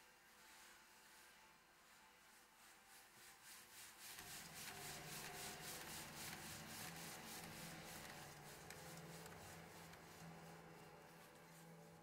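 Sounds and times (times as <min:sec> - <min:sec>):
rhythmic scraping of piano strings: 0:03.2 - 0:12.0.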